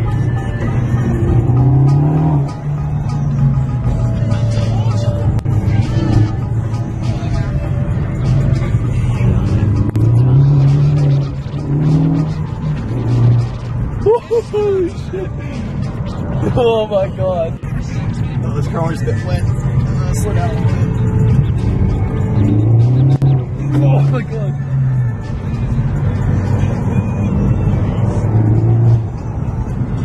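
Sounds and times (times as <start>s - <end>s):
car engine accelerating hard: 0.0s - 14.1s, 19.1s - 30.0s
music playing: 0.0s - 30.0s.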